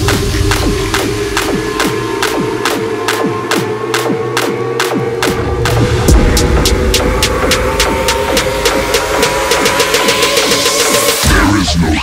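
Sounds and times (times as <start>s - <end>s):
heavy electronic bass line: 0.0s - 12.0s.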